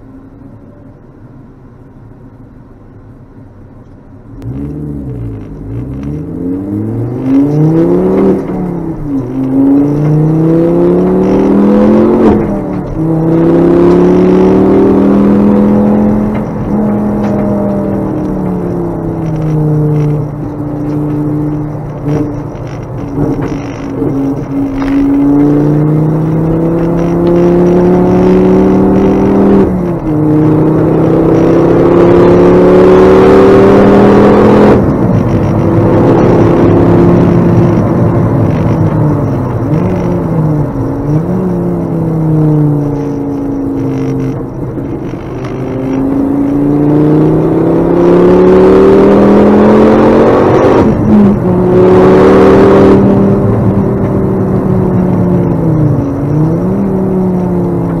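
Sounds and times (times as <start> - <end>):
car engine accelerating hard: 4.3 - 58.0.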